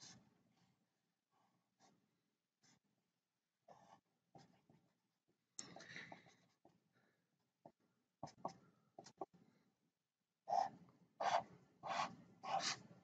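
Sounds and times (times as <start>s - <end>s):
marker pen scratching on paper: 0.0s - 0.3s, 3.7s - 4.9s, 7.6s - 9.3s, 10.5s - 13.0s.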